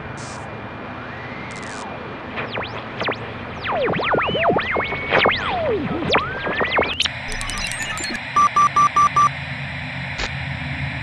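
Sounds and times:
short electronic beeps: 0:07.3 - 0:09.3.

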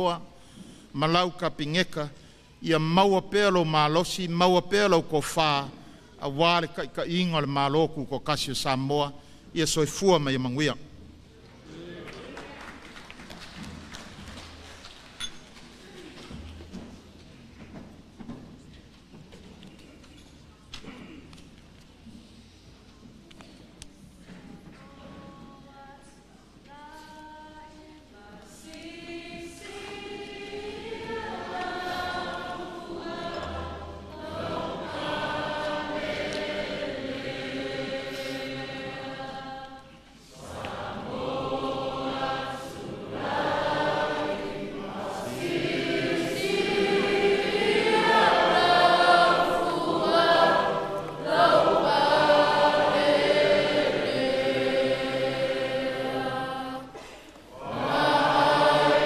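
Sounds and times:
choir singing long notes: 0:27.0 - 0:59.0.

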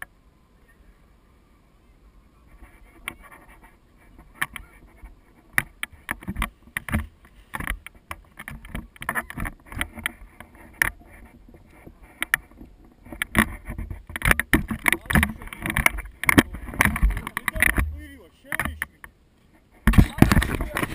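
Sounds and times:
harness buckles rattling: 0:12.3 - 0:19.0.

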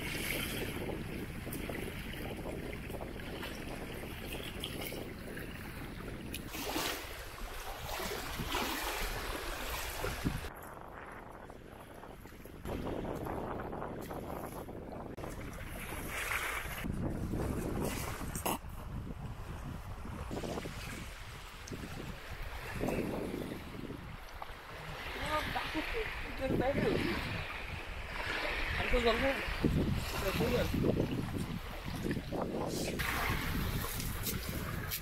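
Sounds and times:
river water splashing and lapping: 0:00.0 - 0:35.0
wind buffeting microphone: 0:00.0 - 0:35.0.

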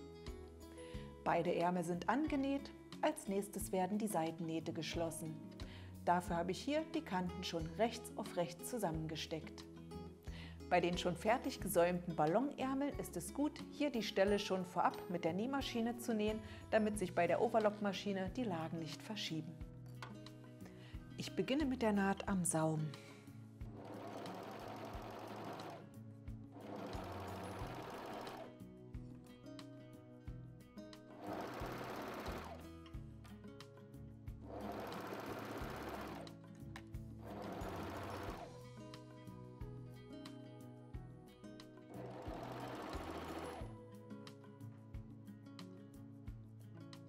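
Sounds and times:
overlock machine stitching: 0:23.7 - 0:25.9, 0:26.5 - 0:28.5, 0:31.1 - 0:32.6, 0:34.4 - 0:36.3, 0:37.2 - 0:38.5, 0:41.9 - 0:43.7.

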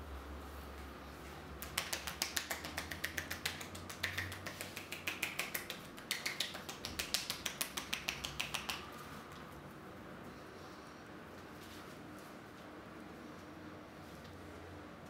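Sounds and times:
hands slapping neck and shoulders: 0:01.5 - 0:08.9.

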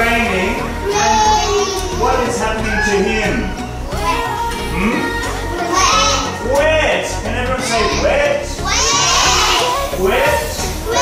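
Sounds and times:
children singing: 0:00.0 - 0:11.0
musical accompaniment: 0:00.0 - 0:11.0.

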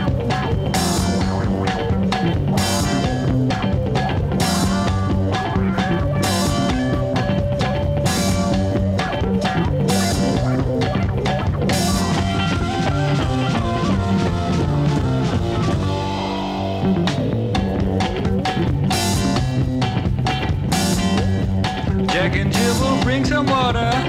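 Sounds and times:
blues-rock band playing: 0:00.0 - 0:24.0
sliding electric guitar notes: 0:00.0 - 0:24.0.

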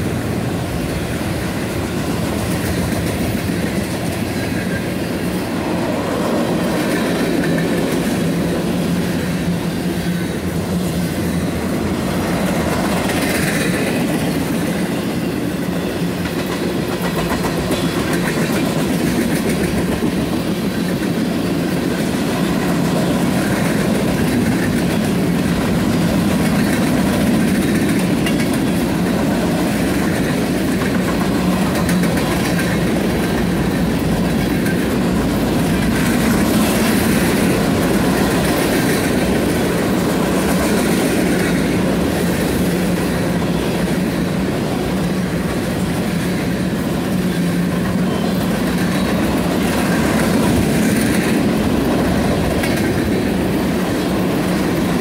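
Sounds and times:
steel train wheels on rails: 0:00.0 - 0:55.0.

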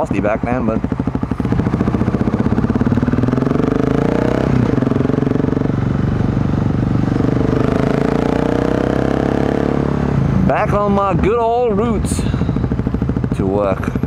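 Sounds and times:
motorcycle engine accelerating: 0:00.0 - 0:14.0.

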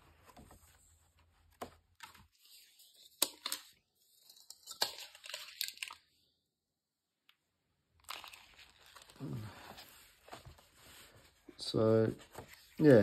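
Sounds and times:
book page turning: 0:08.0 - 0:13.0
paper rustling: 0:08.0 - 0:13.0.

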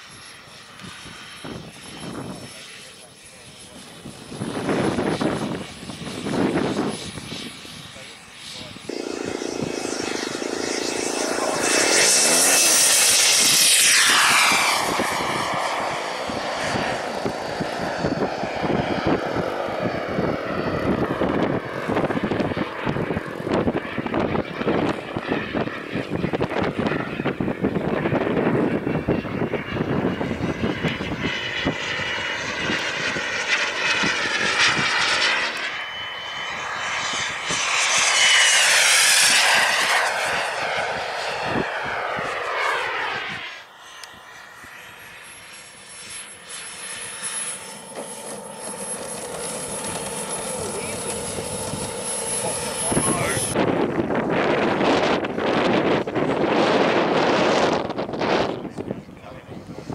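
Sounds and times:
model jet engine whine: 0:00.0 - 0:59.9.

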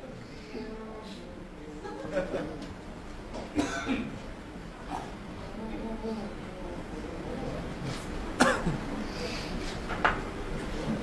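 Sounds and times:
faint background murmur: 0:00.0 - 0:11.0
sharp cough: 0:03.5 - 0:04.2, 0:08.4 - 0:08.8.

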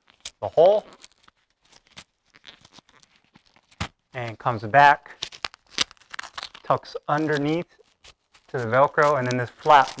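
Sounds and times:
strap scraping: 0:00.0 - 0:10.0.

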